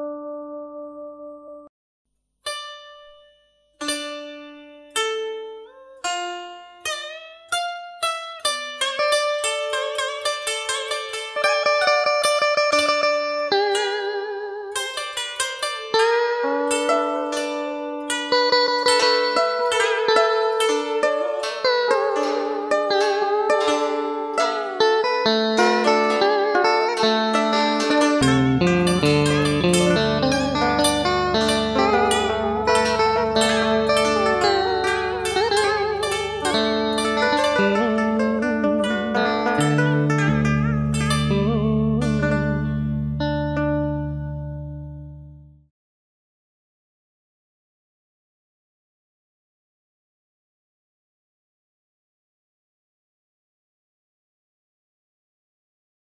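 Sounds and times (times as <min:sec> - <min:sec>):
plucked string melody: 0:00.0 - 0:01.7, 0:02.4 - 0:45.7
bass line: 0:27.9 - 0:45.6.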